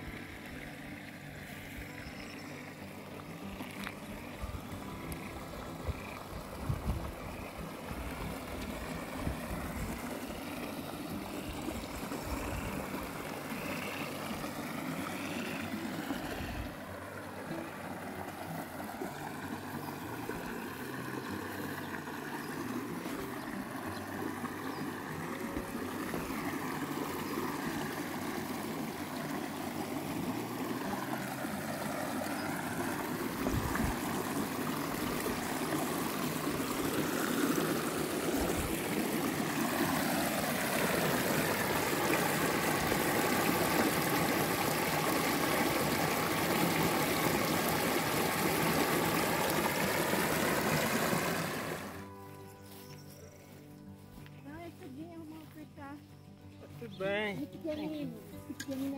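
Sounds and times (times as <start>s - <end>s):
stream running over stones: 0.0s - 55.8s.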